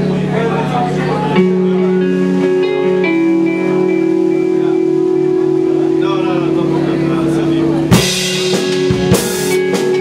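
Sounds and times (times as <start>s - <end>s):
rock band held chord: 0.0s - 10.0s
loud drum crash: 7.9s - 10.0s.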